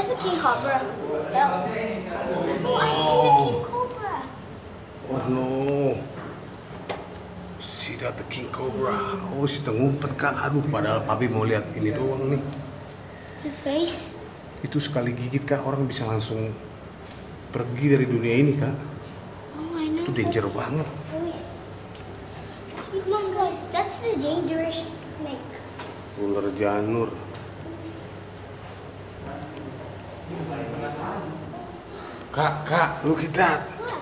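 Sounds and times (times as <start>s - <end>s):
cricket trilling: 0.0s - 34.0s.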